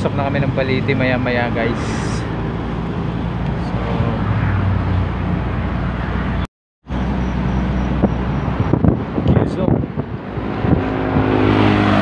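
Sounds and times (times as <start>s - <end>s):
car engine hum: 0.0s - 12.0s
road noise: 0.0s - 12.0s.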